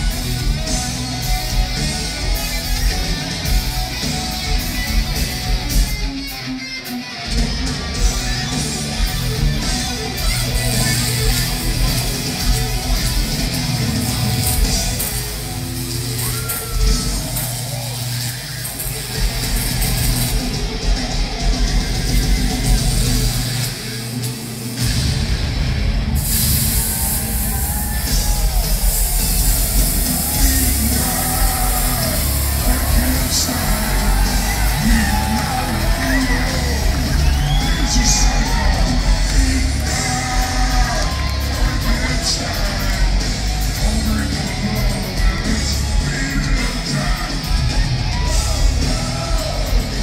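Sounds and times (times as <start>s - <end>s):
live hard rock band: 0.0s - 50.0s.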